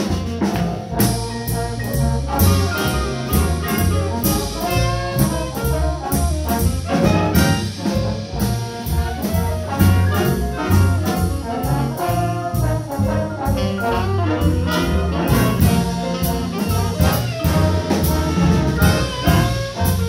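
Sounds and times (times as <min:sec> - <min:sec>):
bass line: 0:00.0 - 0:20.0
steady beat: 0:00.0 - 0:20.0
trombones: 0:00.0 - 0:20.0
trumpets: 0:00.0 - 0:20.0
saxophones: 0:09.4 - 0:20.0.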